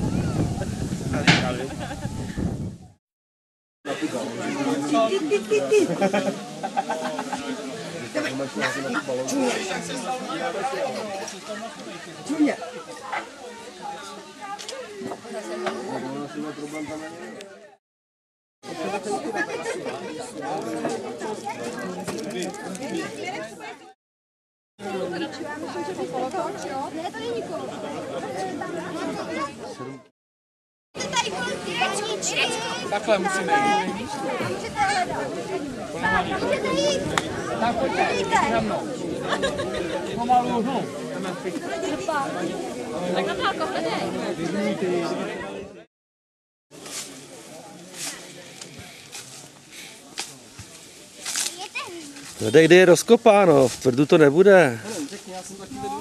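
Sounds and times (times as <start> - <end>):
children and adults chattering: 0.0 - 2.2, 3.9 - 17.8, 18.6 - 24.0, 24.8 - 30.1, 31.0 - 45.9, 46.8 - 56.0.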